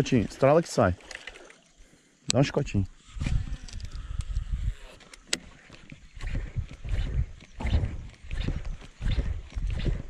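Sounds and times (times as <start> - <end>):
fishing reel being cranked: 3.0 - 10.0
low thumps and clicks: 5.2 - 10.0.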